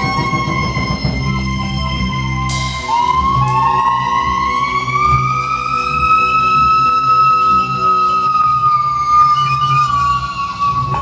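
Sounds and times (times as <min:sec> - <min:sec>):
bowed string instrument gliding upward: 0:00.0 - 0:11.0.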